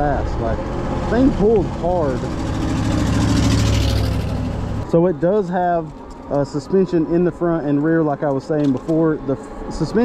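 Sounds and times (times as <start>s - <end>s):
wind and road noise: 0.0s - 10.0s.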